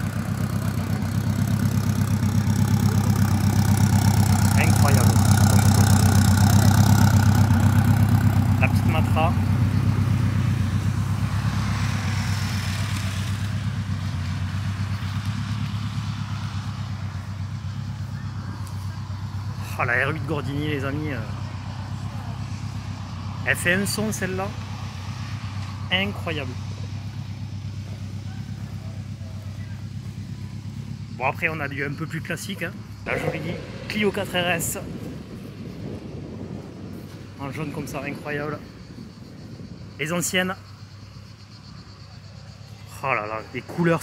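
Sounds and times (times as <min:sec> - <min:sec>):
car engine idling: 0:00.0 - 0:44.0.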